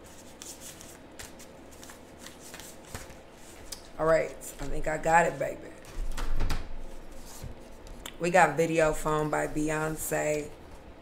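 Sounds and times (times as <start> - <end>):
cards being shuffled: 0.0 - 4.7.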